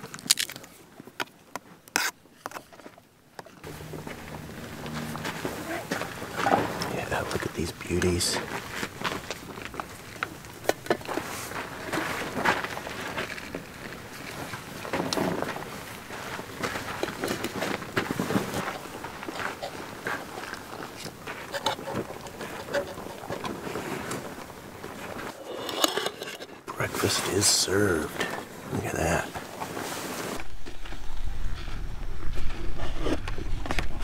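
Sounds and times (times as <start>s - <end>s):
scraping and handling noises: 0.0s - 31.0s
outdoor background noise: 0.0s - 34.0s.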